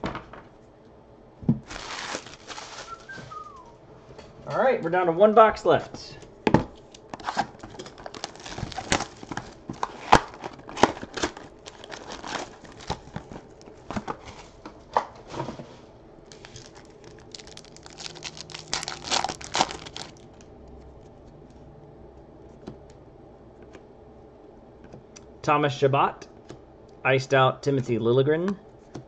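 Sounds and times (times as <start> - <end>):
foil packs crinkling and tearing: 1.6 - 3.6, 7.1 - 14.2, 16.3 - 20.5.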